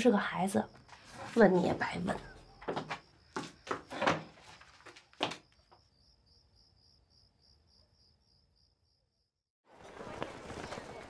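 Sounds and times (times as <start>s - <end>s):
cricket chirping: 0.0s - 9.3s.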